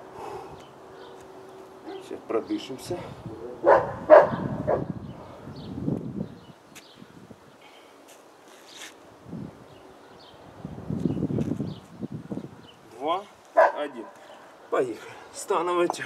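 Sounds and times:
man breathing hard: 0:00.0 - 0:00.7.

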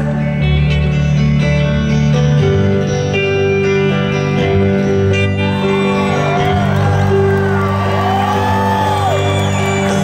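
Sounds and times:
electric guitar: 0:00.0 - 0:10.0
live band playing: 0:00.0 - 0:10.0
audience whooping and cheering: 0:05.4 - 0:10.0.

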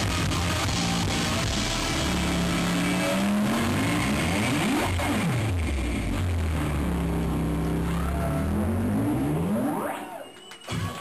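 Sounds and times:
distorted electric guitar and bass: 0:00.0 - 0:11.0.

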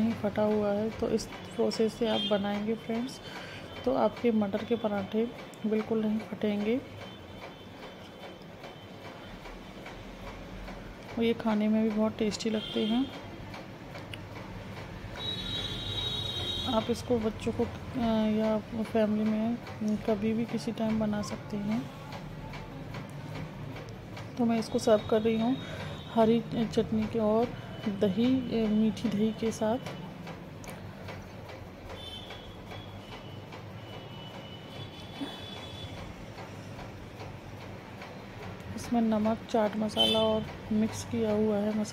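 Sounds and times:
soft regular ticks: 0:00.0 - 0:41.9.

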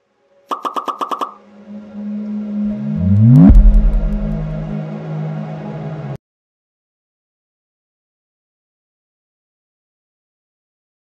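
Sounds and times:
quick electronic beeps: 0:00.5 - 0:01.4
low drone with rising sweeps: 0:01.4 - 0:06.2
low rumble: 0:02.4 - 0:04.8
deep boom: 0:03.0 - 0:04.7.

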